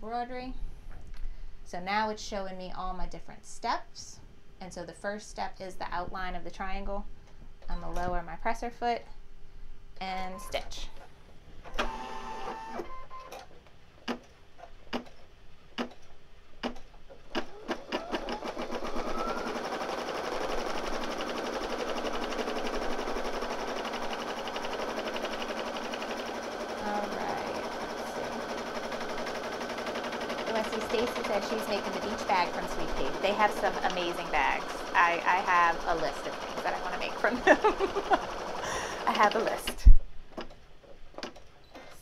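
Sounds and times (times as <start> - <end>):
embroidery machine stitching: 16.7 - 39.7.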